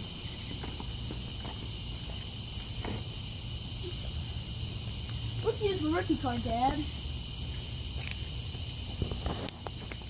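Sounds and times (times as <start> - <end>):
night insects chirring: 0.0 - 10.0.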